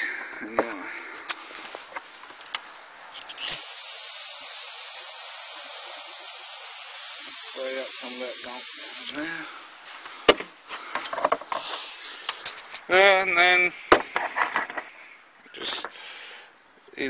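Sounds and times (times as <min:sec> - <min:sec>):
aerosol spray can hissing: 0:03.4 - 0:09.2, 0:11.6 - 0:12.3.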